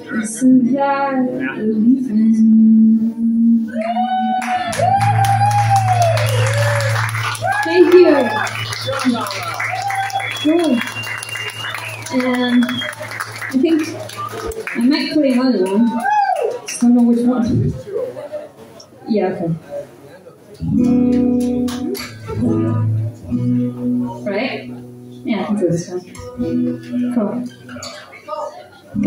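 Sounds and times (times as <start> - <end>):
voices talking: 10.3 - 15.9
acoustic guitar chord ringing: 20.6 - 25.6.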